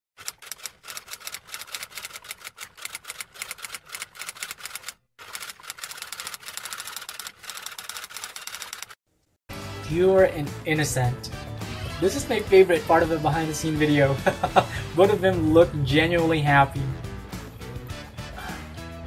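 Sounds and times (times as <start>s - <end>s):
music: 9.5s - 19.0s
person speaking: 12.0s - 17.0s.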